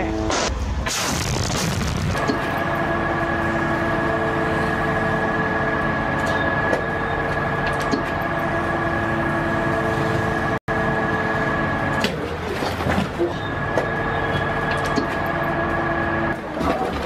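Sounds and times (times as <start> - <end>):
mechanical hum: 0.0 - 17.0.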